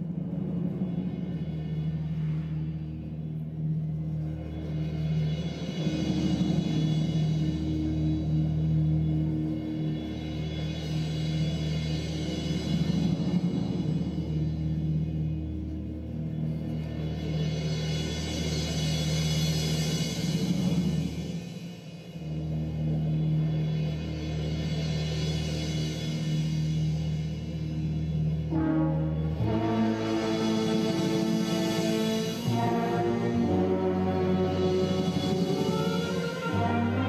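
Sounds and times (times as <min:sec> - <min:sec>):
orchestra music: 0:00.0 - 0:37.0
wind band sustained low chords: 0:00.0 - 0:37.0.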